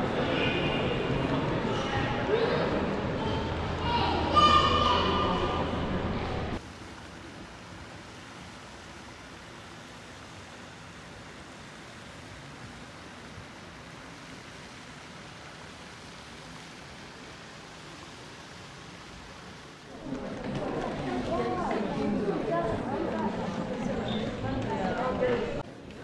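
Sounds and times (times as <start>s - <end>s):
steady hiss: 6.6s - 21.8s.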